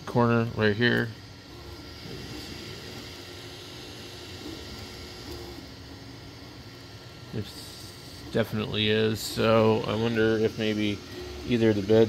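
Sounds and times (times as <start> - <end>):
printer fan hiss: 0.0 - 12.0
stepper motors whining: 0.0 - 12.0.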